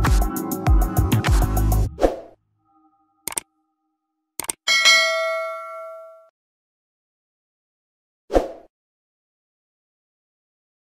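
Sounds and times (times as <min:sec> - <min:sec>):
bell-like ding: 0:04.7 - 0:06.3.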